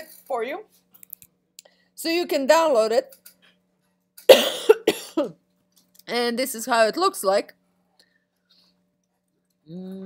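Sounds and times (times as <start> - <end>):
person coughing: 4.3 - 5.4.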